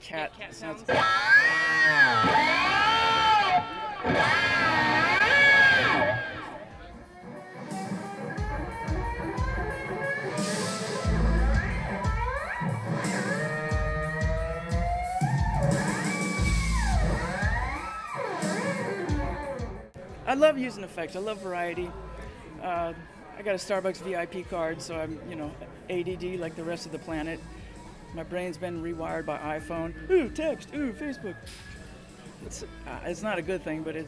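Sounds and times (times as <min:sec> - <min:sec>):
electric guitar sliding notes: 0:00.9 - 0:06.7, 0:07.3 - 0:19.8
band with drums and bass: 0:06.9 - 0:19.9.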